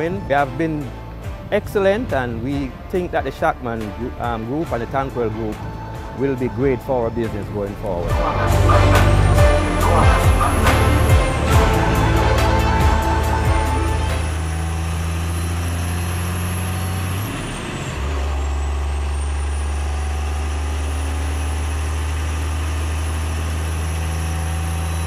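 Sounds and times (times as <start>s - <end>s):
diesel truck engine idling: 0.0s - 25.0s.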